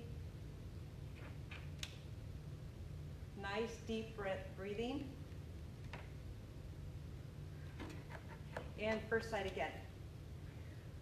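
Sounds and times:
steady low hum: 0.0s - 11.0s
woman speaking: 3.4s - 5.2s, 8.8s - 9.9s.

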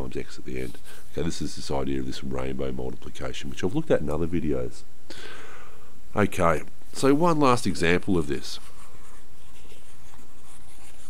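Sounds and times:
stylus rubbing on tablet: 0.5s - 1.3s, 8.3s - 11.0s.

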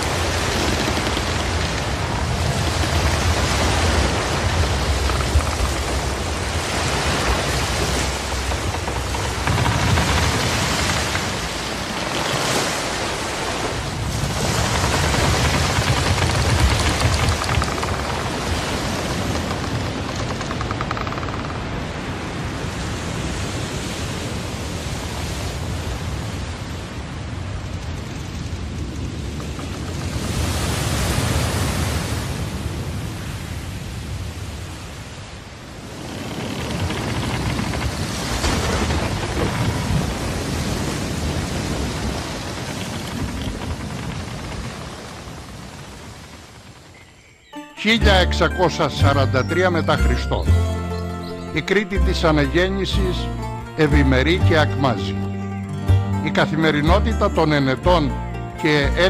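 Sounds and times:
deep rumbles: 0.0s - 22.3s, 27.3s - 32.1s, 35.8s - 46.9s
sea surging: 0.0s - 55.4s.

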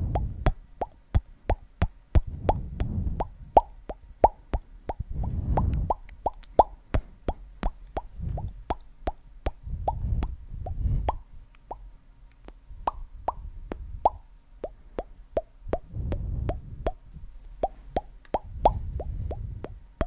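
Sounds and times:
low muffled rumble: 0.0s - 0.6s, 2.1s - 4.3s, 5.0s - 6.3s, 6.9s - 11.6s, 15.6s - 20.0s
mouth popping noises: 0.0s - 20.0s.

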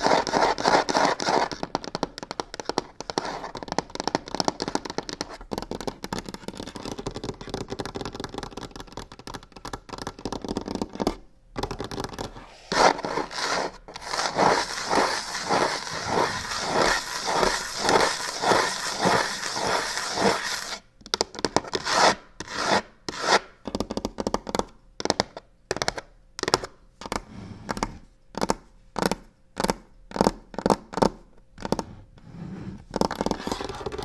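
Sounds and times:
fingernails scratching on a box: 0.0s - 1.9s, 12.4s - 20.8s, 31.7s - 34.0s.

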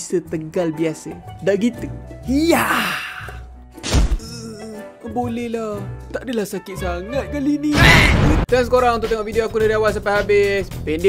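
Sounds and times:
background music: 0.0s - 11.0s
cartoon impact thunk: 3.8s - 4.2s, 7.8s - 8.4s.

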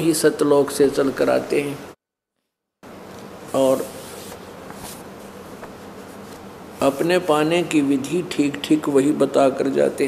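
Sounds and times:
person speaking: 0.0s - 2.0s, 3.4s - 10.0s
faint buzzing hum with hiss: 2.8s - 10.0s.

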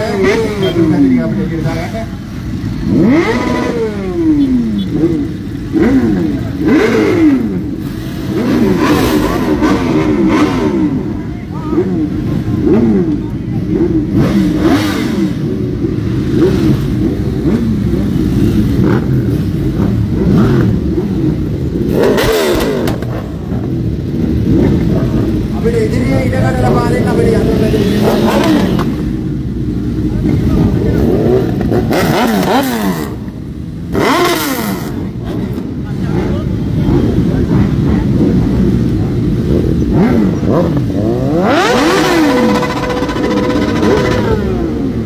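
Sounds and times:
motorcycles revving: 0.0s - 45.0s.

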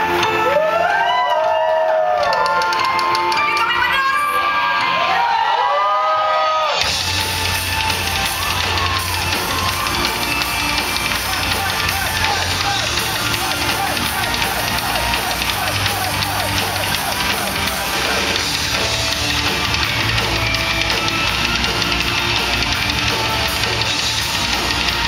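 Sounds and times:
symphonic metal band playing: 0.0s - 1.2s, 6.6s - 25.0s
drums: 0.0s - 25.0s.

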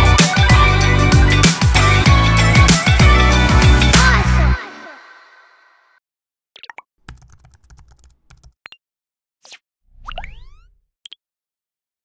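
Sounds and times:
keyboard typing: 7.1s - 8.6s.

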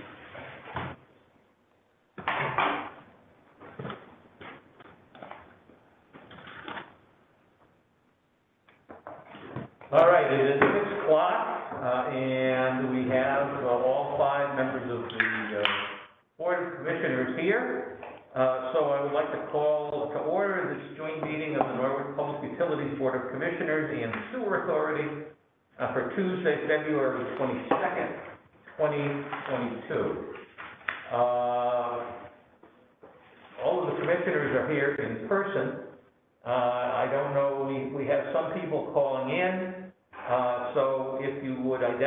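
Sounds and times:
man saying uhh: 31.1s - 32.3s.

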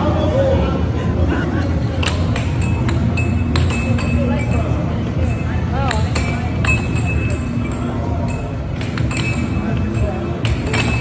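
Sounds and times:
chatter: 0.0s - 11.0s.

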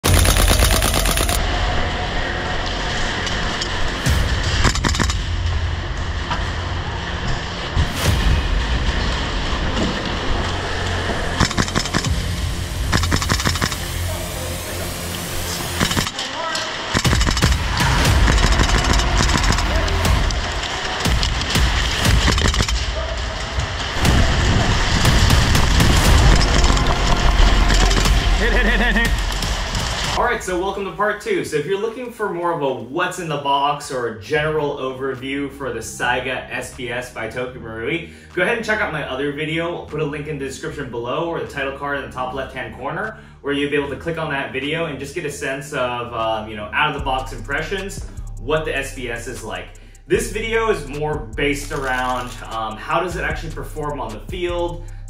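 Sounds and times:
airsoft shotgun full-auto burst: 0.0s - 1.4s, 12.9s - 13.8s, 16.9s - 20.3s.

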